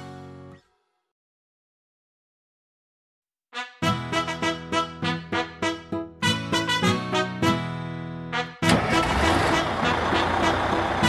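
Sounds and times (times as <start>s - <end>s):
background music: 0.0s - 0.7s, 3.6s - 11.0s
cartoon bus engine: 8.3s - 11.0s.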